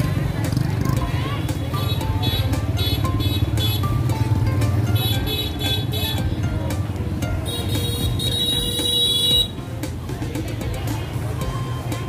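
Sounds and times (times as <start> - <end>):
people talking: 0.0 - 3.9, 5.5 - 8.3, 9.3 - 12.0
motorbike engines running: 0.0 - 12.0
music with a beat: 0.0 - 12.0.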